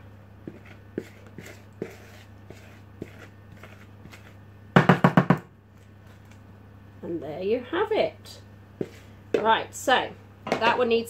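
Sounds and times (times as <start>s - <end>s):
oven humming: 0.0s - 11.0s
spatula scraping bowl: 0.4s - 4.4s, 8.8s - 9.6s.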